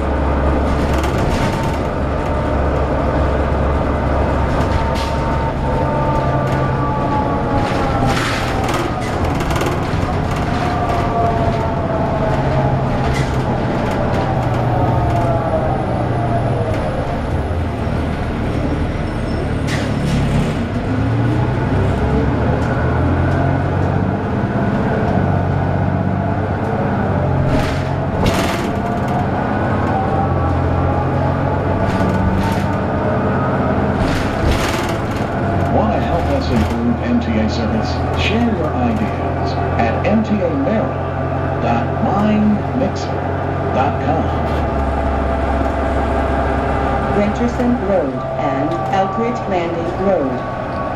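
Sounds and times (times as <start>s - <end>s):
drivetrain whine: 0.0s - 50.9s
low engine drone: 0.0s - 50.9s.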